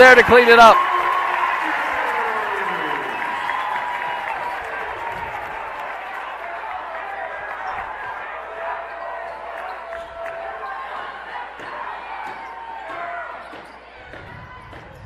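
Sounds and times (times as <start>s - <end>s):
crowd chatter: 0.3s - 15.0s.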